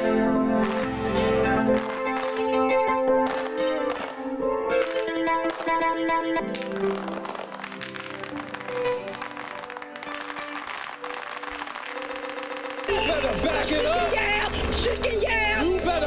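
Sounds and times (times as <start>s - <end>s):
dense ticking texture: 6.6s - 16.0s.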